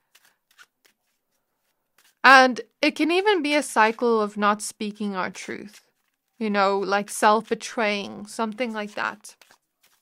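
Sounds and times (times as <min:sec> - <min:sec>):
cards being shuffled: 0:00.0 - 0:02.3, 0:04.9 - 0:10.0.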